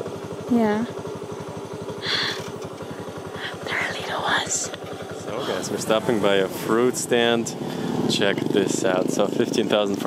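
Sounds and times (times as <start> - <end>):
small engine idling: 0.0 - 10.0.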